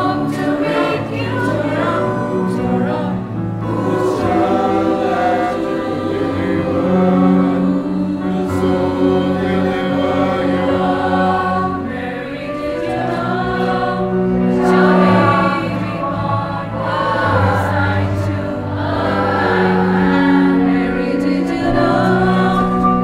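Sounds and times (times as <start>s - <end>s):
mixed choir singing in harmony: 0.0s - 23.0s.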